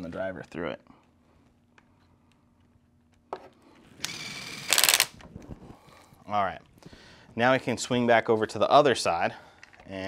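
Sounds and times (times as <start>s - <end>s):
power screwdriver driving screw: 4.0s - 5.1s.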